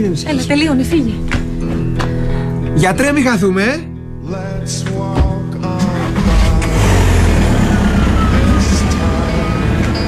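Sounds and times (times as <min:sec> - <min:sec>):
car engine rumbling: 0:05.6 - 0:10.0.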